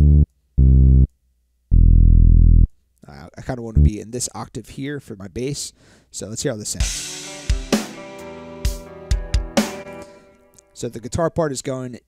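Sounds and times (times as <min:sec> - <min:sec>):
low synth bass note: 0:01.7 - 0:02.7.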